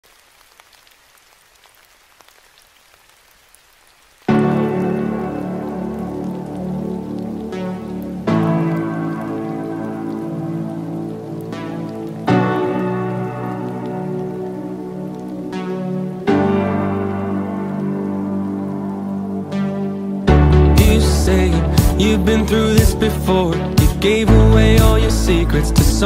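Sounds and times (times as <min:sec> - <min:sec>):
faint rain falling: 0:00.0 - 0:26.0
music with sustained chords: 0:04.3 - 0:26.0.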